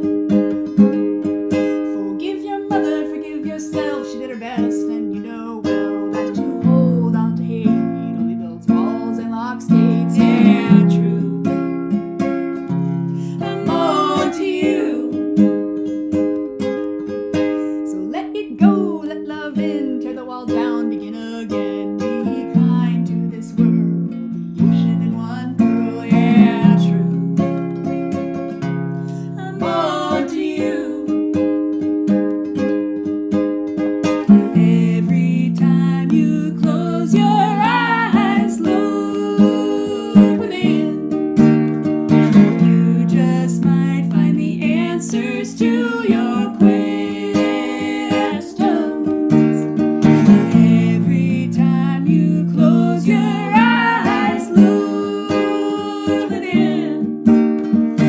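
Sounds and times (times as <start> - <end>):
classical guitar: 0.0 - 58.0
women singing: 1.5 - 11.7, 13.2 - 15.5, 17.4 - 23.8, 24.6 - 27.4, 29.1 - 31.3, 34.3 - 41.1, 42.4 - 49.7, 50.3 - 57.2.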